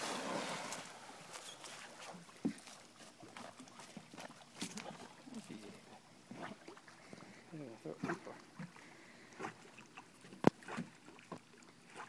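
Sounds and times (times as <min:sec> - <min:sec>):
dog paddling in water: 0:00.0 - 0:12.0.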